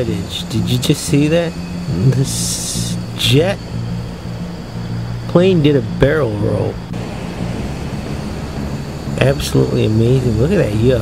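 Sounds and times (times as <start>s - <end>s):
jet aircraft flying overhead: 0.0s - 11.0s.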